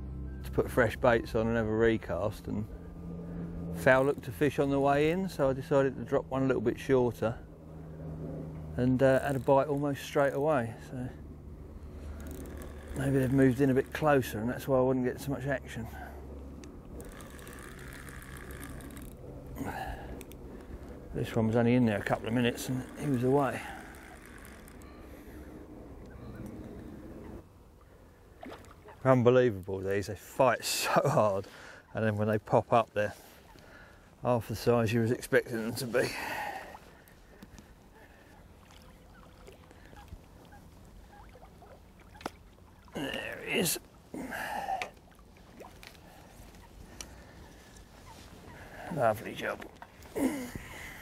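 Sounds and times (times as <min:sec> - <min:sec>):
fishing reel ticking: 0:09.0 - 0:10.4, 0:12.0 - 0:14.2, 0:17.0 - 0:20.4, 0:22.2 - 0:25.4
small ticks: 0:11.9 - 0:14.0, 0:16.3 - 0:19.2, 0:44.8 - 0:47.9
water lapping and splashing: 0:15.2 - 0:29.7, 0:35.8 - 0:51.0.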